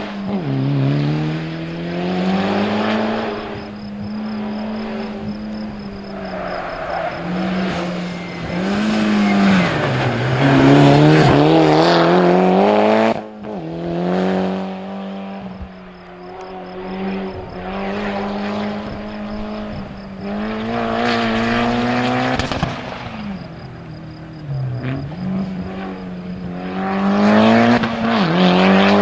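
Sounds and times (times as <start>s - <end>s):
rally car engine revving: 0.0s - 29.0s.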